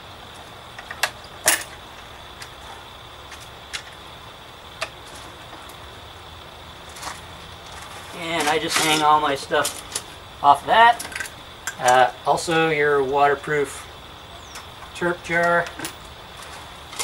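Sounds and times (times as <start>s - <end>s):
faint background hiss: 0.0s - 17.0s.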